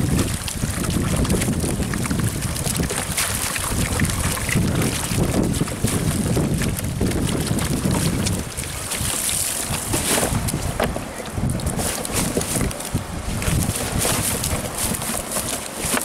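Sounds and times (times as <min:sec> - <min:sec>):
water splashing off a net: 0:00.0 - 0:10.8, 0:11.4 - 0:16.0
wind buffeting microphone: 0:00.0 - 0:16.0.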